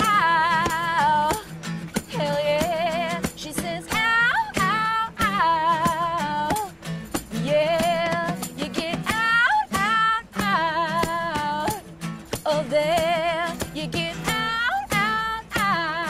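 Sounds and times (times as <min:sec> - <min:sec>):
shaken tambourine: 0:00.0 - 0:16.0
strummed acoustic guitars: 0:00.0 - 0:16.0
woman singing with vibrato: 0:00.0 - 0:16.0.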